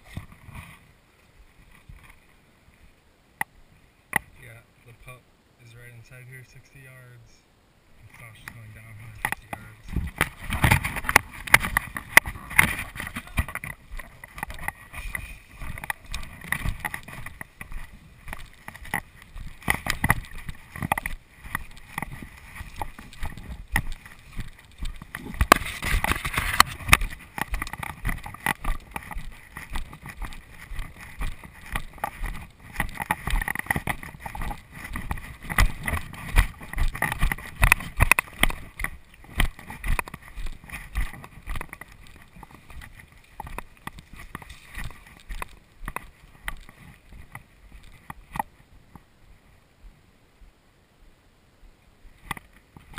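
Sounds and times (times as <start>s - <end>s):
grass brushing against legs: 8.0s - 48.7s
footsteps in vegetation: 8.2s - 48.7s.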